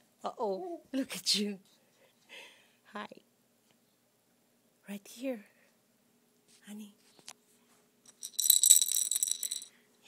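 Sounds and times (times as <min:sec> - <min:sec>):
baby rattle jingling: 0:08.1 - 0:09.7.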